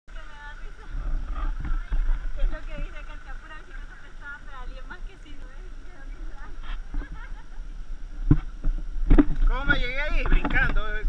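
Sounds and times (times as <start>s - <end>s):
people's voices: 0.1s - 8.0s
wind buffeting microphone: 0.1s - 11.0s.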